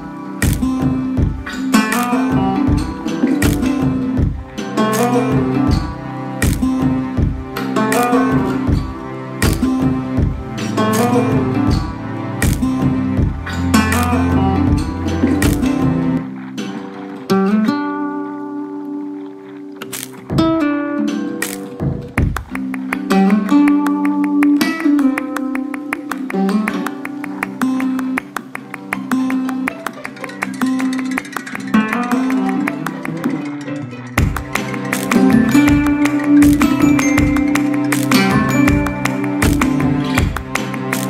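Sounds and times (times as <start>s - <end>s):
flamenco acoustic guitar music: 0.0s - 41.0s.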